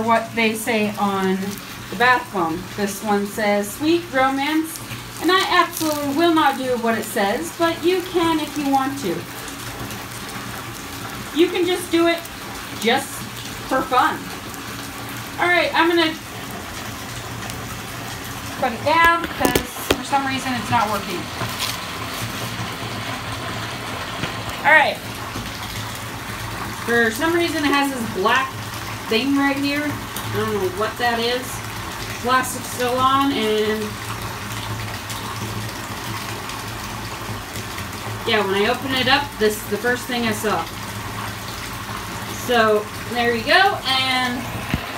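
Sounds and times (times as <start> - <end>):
water running into bathtub: 0.0 - 44.9.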